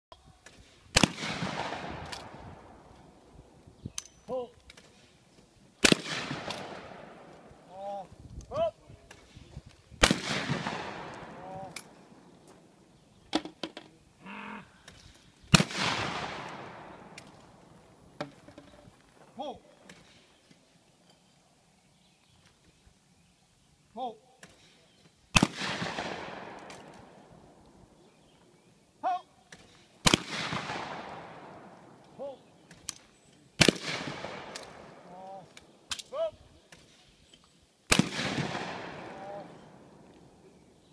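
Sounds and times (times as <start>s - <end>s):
echo rolling off woods: 0.4s - 8.4s, 9.0s - 40.9s
shotgun shots: 0.9s - 2.8s, 5.8s - 7.6s, 10.0s - 12.0s, 15.5s - 17.5s, 25.3s - 27.2s, 30.0s - 32.0s, 33.6s - 35.2s, 37.9s - 40.0s.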